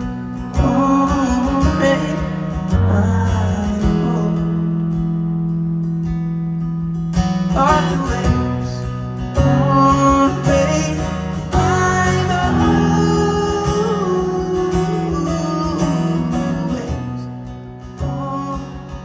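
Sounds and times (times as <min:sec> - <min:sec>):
man singing into a microphone: 0:00.0 - 0:04.9, 0:07.5 - 0:19.0
acoustic guitar strumming: 0:00.0 - 0:19.0.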